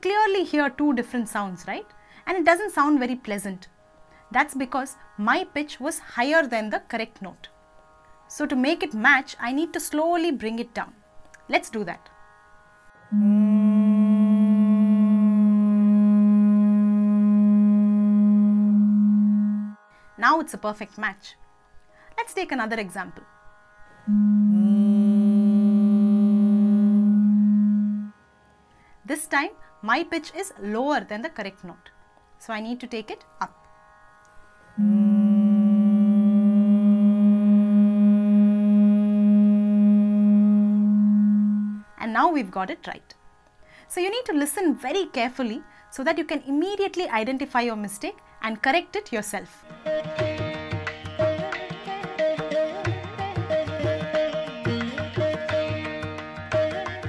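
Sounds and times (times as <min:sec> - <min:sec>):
steady reference drone: 0:13.1 - 0:19.8, 0:24.0 - 0:28.1, 0:34.8 - 0:41.8
woman humming a long note: 0:13.1 - 0:19.8, 0:24.0 - 0:28.2, 0:34.8 - 0:42.0.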